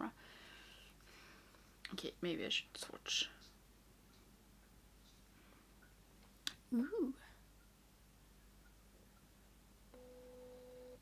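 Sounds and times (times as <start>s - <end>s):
faint steady tone: 8.4s - 11.0s.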